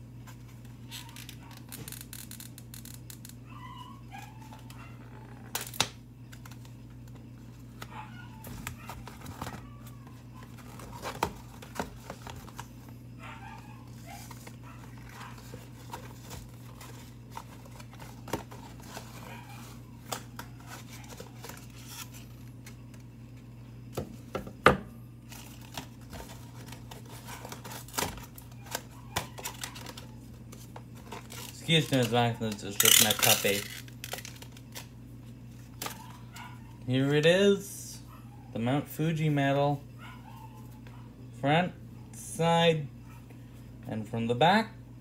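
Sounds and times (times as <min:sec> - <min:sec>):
steady low hum: 0:00.0 - 0:45.0
paper packaging crinkling: 0:05.4 - 0:23.1, 0:25.2 - 0:36.4.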